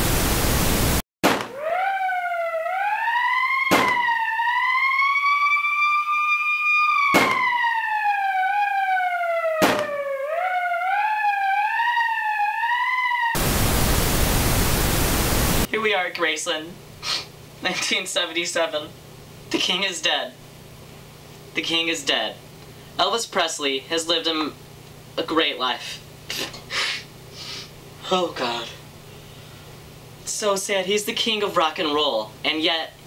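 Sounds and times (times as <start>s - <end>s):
tv static hiss: 0.0s - 1.0s, 13.4s - 29.0s.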